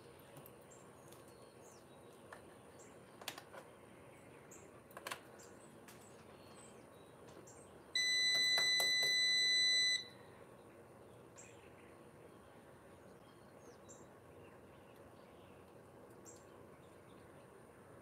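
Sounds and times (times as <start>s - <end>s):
electronic beep: 8.0s - 10.1s.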